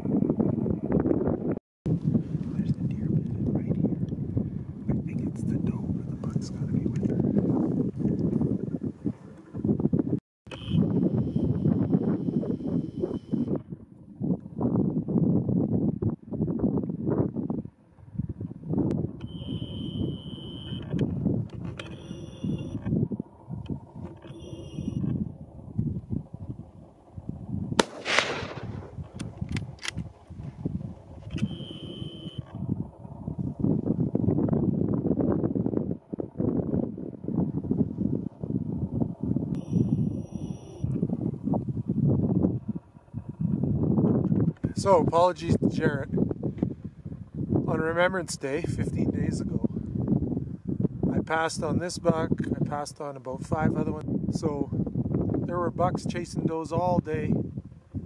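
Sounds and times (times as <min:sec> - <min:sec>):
wind noise on microphone: 0:00.0 - 0:58.0
rifle shot: 0:27.8 - 0:30.0.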